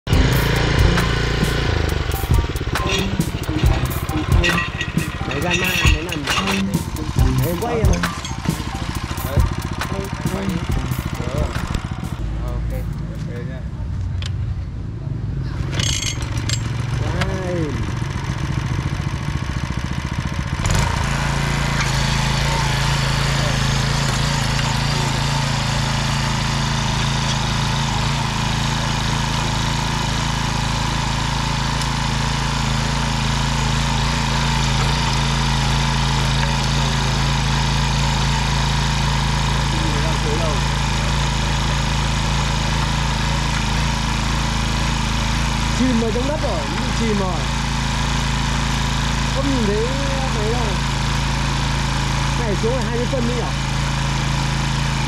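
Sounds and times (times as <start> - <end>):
tiller petrol engine running: 0.0 - 14.6, 15.2 - 55.0.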